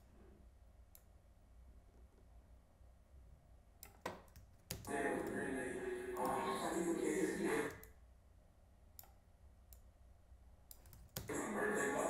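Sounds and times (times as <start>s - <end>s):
computer clicks: 3.8s - 5.4s, 9.0s - 9.9s, 10.7s - 11.3s.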